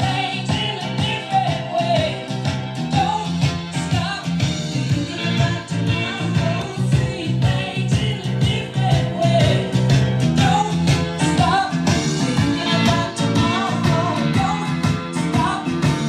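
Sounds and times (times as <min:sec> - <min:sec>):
rock song with singing on stereo: 0:00.0 - 0:16.0.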